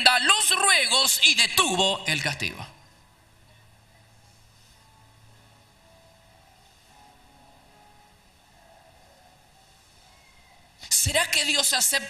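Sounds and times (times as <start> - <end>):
man speaking into a microphone: 1.0 - 2.8
faint hiss: 2.7 - 10.9
weak steady tones: 2.8 - 10.7.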